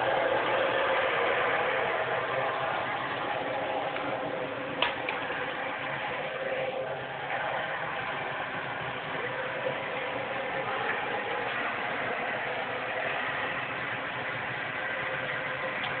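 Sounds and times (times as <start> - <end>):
gas burner rushing: 0.0 - 16.0.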